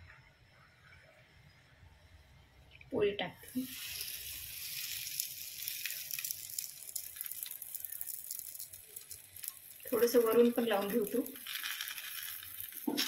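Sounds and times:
flatbread sizzling on a griddle: 0:03.5 - 0:13.0
small crackles: 0:03.5 - 0:13.0.

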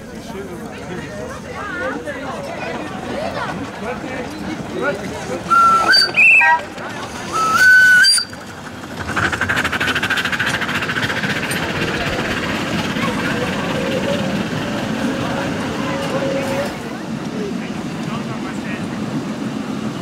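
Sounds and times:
rhythmic steam engine running: 0:02.1 - 0:20.0
steam locomotive whistle: 0:05.5 - 0:08.4.

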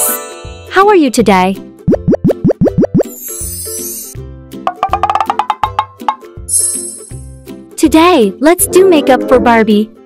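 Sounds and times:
cheerful background music: 0:00.0 - 0:10.0
quick rising bloop pops: 0:01.9 - 0:03.1
high sparkling shimmer: 0:06.5 - 0:07.3.

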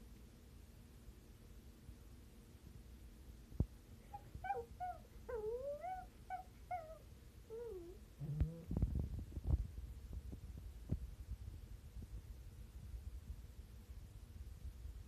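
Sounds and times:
dog whining: 0:04.0 - 0:08.8.

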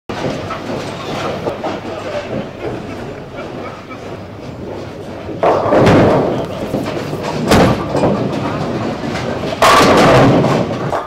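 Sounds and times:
bowling balls clattering: 0:00.1 - 0:11.0
bowling balls rolling rumble: 0:00.1 - 0:11.0.

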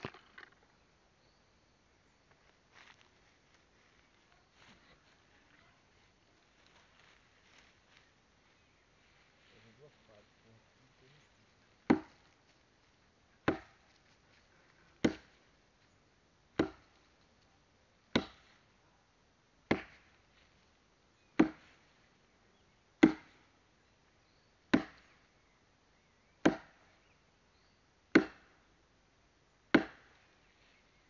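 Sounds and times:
axe chopping firewood: 0:00.0 - 0:00.6, 0:11.8 - 0:12.3, 0:13.4 - 0:13.9, 0:15.0 - 0:15.4, 0:16.5 - 0:17.0, 0:18.1 - 0:18.6, 0:19.6 - 0:20.2, 0:21.4 - 0:21.8, 0:23.0 - 0:23.5, 0:24.7 - 0:25.2, 0:26.4 - 0:27.0, 0:28.1 - 0:28.6, 0:29.7 - 0:30.2.

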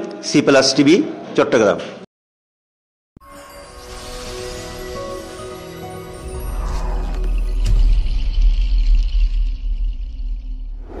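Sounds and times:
whooshing swell: 0:03.8 - 0:08.2.

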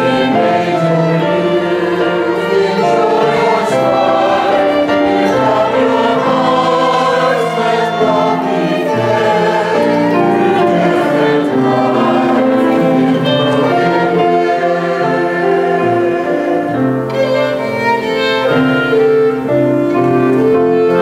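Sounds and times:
choir singing: 0:00.0 - 0:21.0
clarinet: 0:00.0 - 0:21.0
flute: 0:00.0 - 0:21.0.

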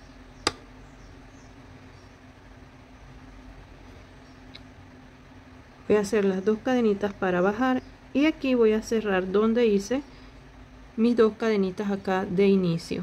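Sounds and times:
low room hum: 0:00.0 - 0:13.0
sharp click: 0:00.4 - 0:00.7.

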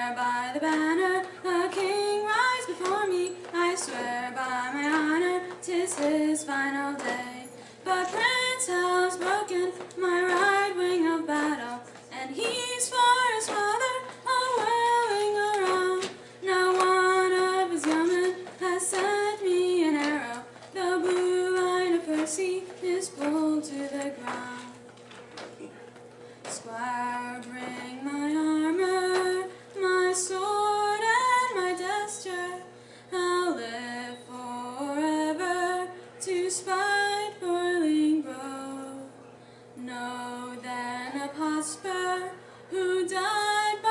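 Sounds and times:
woman singing unaccompanied ballad: 0:00.0 - 0:24.8, 0:26.5 - 0:39.2, 0:39.8 - 0:43.9
singer breathing: 0:32.7 - 0:33.1, 0:39.4 - 0:39.8.

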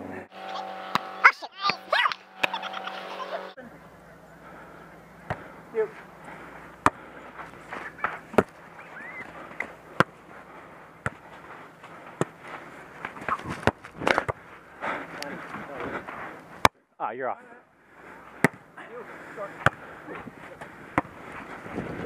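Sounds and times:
players shouting: 0:00.3 - 0:10.2
volleyball being struck: 0:00.8 - 0:02.6, 0:18.4 - 0:18.6.

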